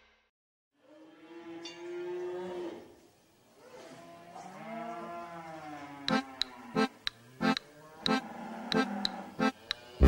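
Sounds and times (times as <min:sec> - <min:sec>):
cow mooing: 0:03.9 - 0:10.0.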